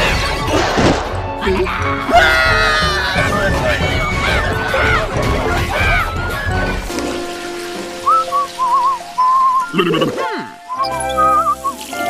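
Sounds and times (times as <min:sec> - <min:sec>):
soft background music: 0:00.0 - 0:12.0
person whistling a tune: 0:08.0 - 0:09.8, 0:10.7 - 0:12.0.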